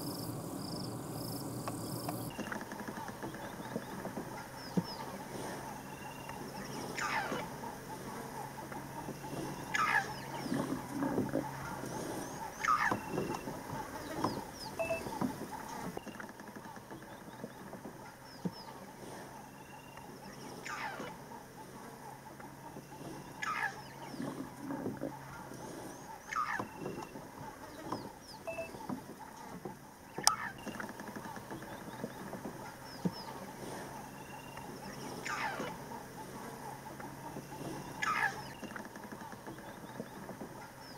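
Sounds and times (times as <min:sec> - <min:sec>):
low steady hum: 0:00.0 - 0:40.9
small bird chirps: 0:09.0 - 0:16.3, 0:25.2 - 0:28.9, 0:37.2 - 0:38.8.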